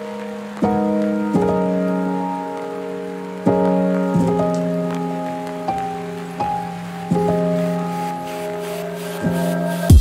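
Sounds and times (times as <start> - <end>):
faint steady hiss: 0.0 - 10.0
soft keyboard chords: 0.0 - 10.0.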